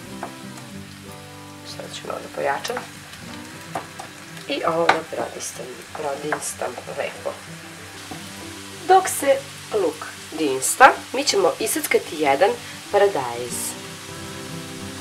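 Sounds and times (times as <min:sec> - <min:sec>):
onion sizzling in oil: 0:00.0 - 0:15.0.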